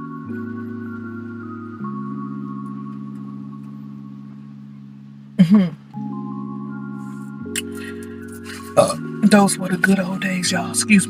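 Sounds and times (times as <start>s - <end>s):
background music of held chords: 0.0s - 11.0s
woman's throaty hum: 5.4s - 5.9s.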